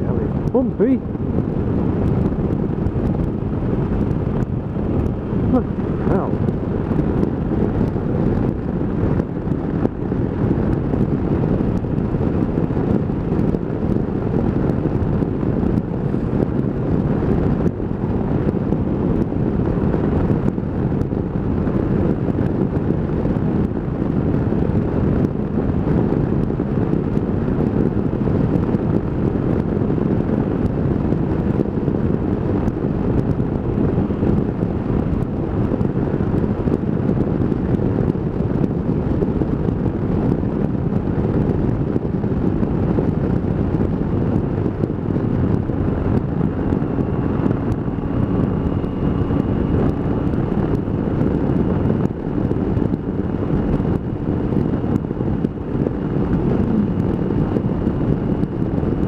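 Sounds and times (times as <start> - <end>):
wind rushing over microphone: 0.0 - 59.0
motorcycle engine: 43.9 - 59.0.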